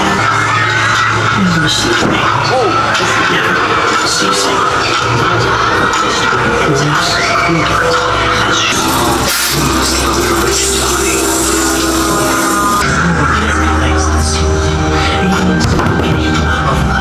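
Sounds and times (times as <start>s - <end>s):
music with deep bass: 0.0s - 17.0s.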